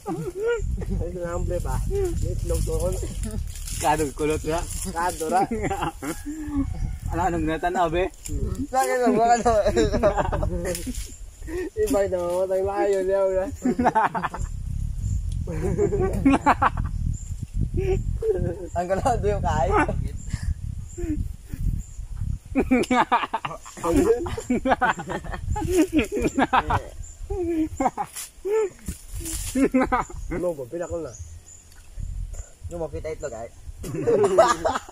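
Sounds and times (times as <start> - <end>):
men laughing loudly: 0.0 - 3.4, 4.5 - 11.9, 13.4 - 14.7, 15.4 - 17.0, 17.7 - 21.6, 22.5 - 30.6, 33.8 - 34.9
men talking: 0.0 - 14.8, 15.4 - 17.1, 17.7 - 21.8, 22.5 - 31.4, 32.0 - 34.9.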